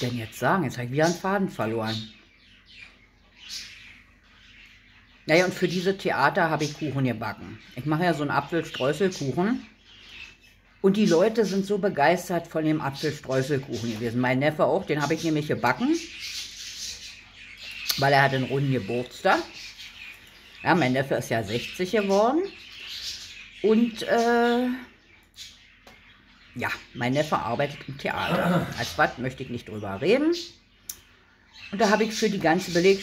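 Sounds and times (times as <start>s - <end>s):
birds chirping faintly: 0.0s - 33.0s.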